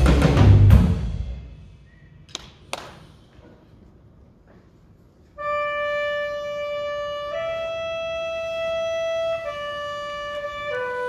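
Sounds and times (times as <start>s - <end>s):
drum hit ringing out: 0.0s - 1.7s.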